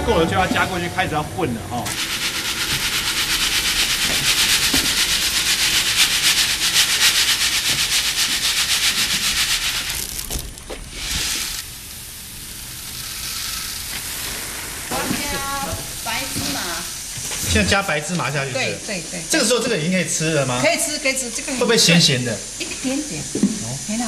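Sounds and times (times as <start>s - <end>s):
puffed rice rattling in sieve: 1.9s - 17.1s.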